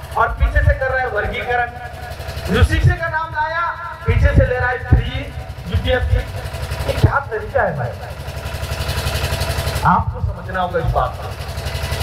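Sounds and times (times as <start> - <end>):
man speaking through loudspeaker: 0.0 - 8.2, 9.8 - 11.4
steady low rumble: 2.0 - 8.3, 9.8 - 11.3.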